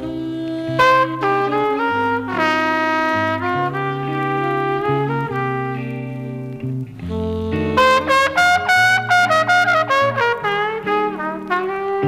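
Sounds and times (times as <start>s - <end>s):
jazz record with trumpet: 0.0s - 12.0s.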